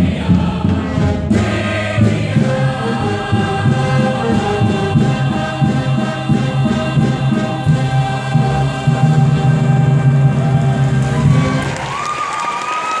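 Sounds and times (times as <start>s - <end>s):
chorus singing with accompaniment: 0.0s - 11.4s
audience cheering and applause: 10.1s - 13.0s
rising whoop: 10.4s - 13.0s.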